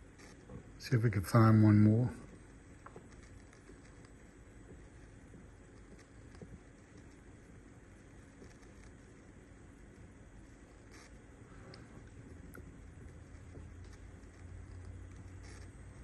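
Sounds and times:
faint ticks: 10.6 - 16.0.

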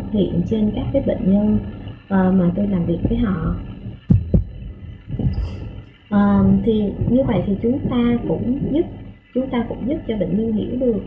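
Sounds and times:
low thumps: 0.0 - 10.4
soft low rumble: 0.0 - 11.0.

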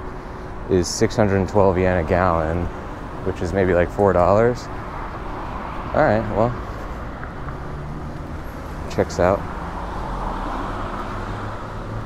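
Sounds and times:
car engine hum: 0.0 - 12.0
road traffic noise: 0.0 - 12.0.

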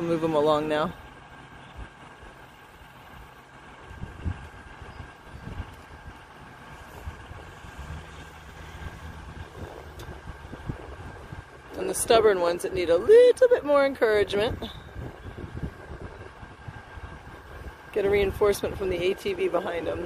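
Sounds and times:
low rumbling bumps: 0.0 - 20.0
vehicle engine idling: 0.0 - 20.0.

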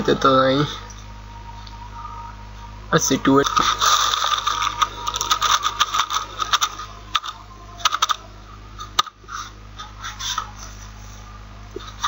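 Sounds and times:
computer keyboard typing: 3.8 - 8.2.

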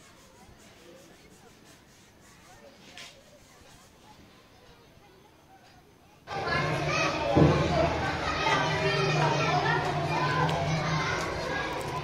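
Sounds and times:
children talking and calling out: 2.2 - 12.0.

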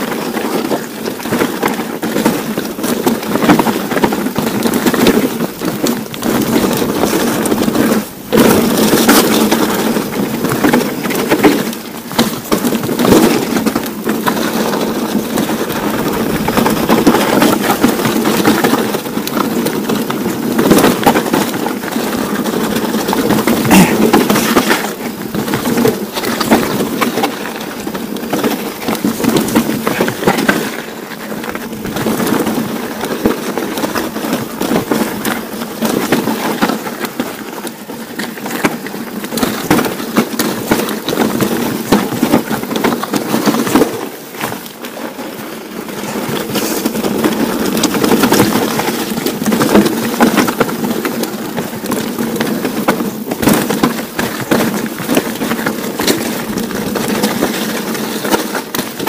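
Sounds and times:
bike rattling: 0.0 - 59.0
tyres crunching over stones: 0.0 - 59.0.

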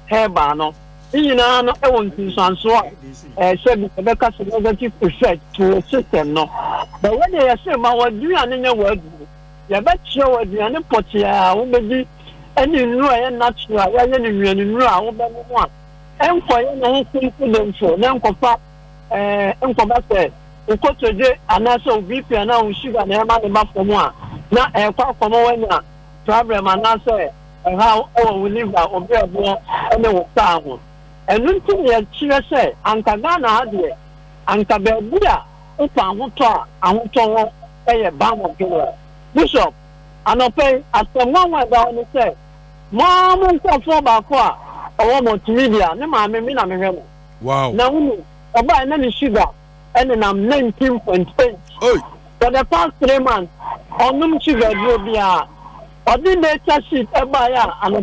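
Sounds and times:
person speaking: 0.0 - 18.5, 19.1 - 38.9, 47.4 - 49.1, 50.0 - 58.0
electrical mains hum: 0.0 - 58.0.

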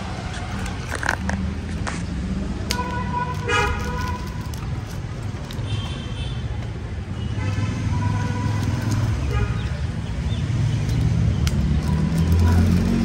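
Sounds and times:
road traffic rumble: 0.0 - 13.0
vehicle horns tooting: 2.7 - 4.5, 5.6 - 9.9.

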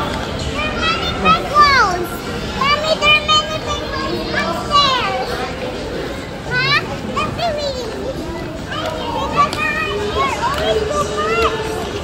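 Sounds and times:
background hubbub: 0.0 - 12.0
children calling and squealing: 0.0 - 12.0.

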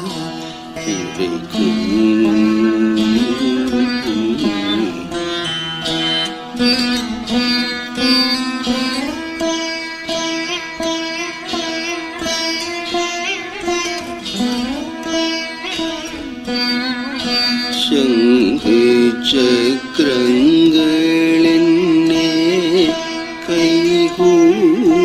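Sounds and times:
plucked veena with pitch bends: 0.0 - 25.0.

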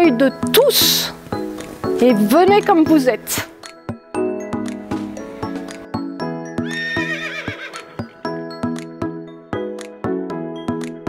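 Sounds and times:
background music with struck notes: 0.0 - 11.0
horse whinnying: 6.6 - 8.2.

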